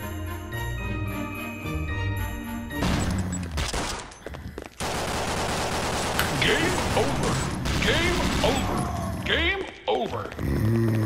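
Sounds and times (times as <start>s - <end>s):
video game automatic gunfire: 4.8s - 9.2s.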